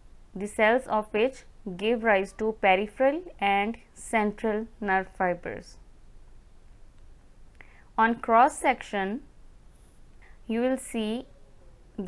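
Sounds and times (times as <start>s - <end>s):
room hiss: 0.0s - 11.3s.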